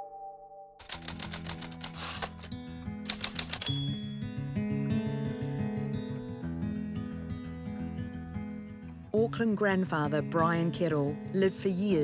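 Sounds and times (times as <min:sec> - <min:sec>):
typewriter keys clacking: 0:00.8 - 0:03.8.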